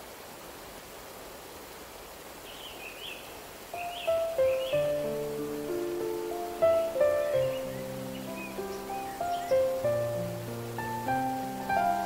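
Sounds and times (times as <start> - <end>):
waterfall rushing: 0.0 - 12.0
bird chirps: 2.5 - 10.1
gentle melody of held notes: 3.7 - 12.0.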